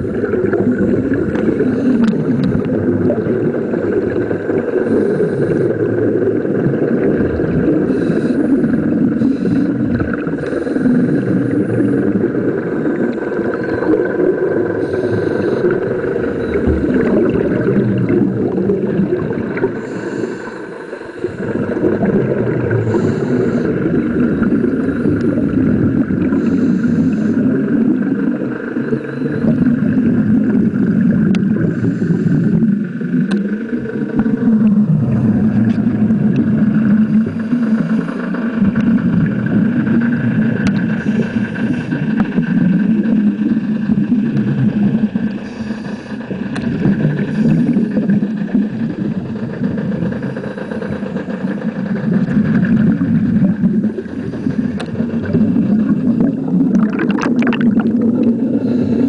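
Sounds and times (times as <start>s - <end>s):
scuba bubbles rising: 0.0s - 59.0s
faint clicks: 33.2s - 33.6s
water moving over camera housing: 52.0s - 58.6s.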